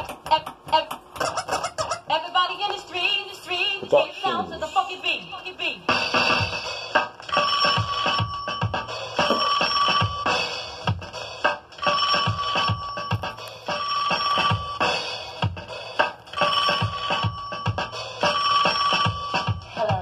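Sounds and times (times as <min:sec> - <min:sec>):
drum machine kicks: 0:05.9 - 0:13.4, 0:14.5 - 0:18.4.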